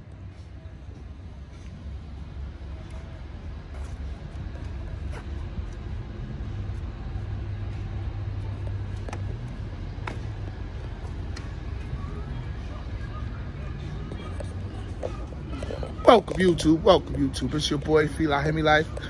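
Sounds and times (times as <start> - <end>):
car engine rumbling: 0.0 - 19.0.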